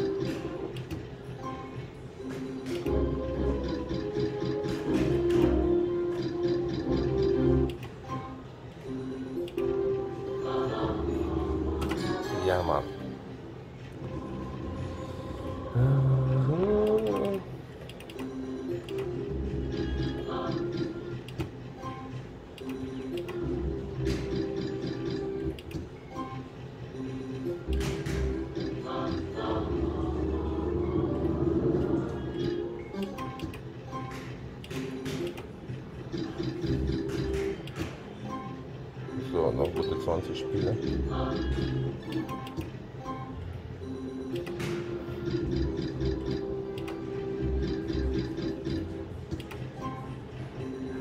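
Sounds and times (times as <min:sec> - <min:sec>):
looping slot machine melody: 0:00.0 - 0:51.0.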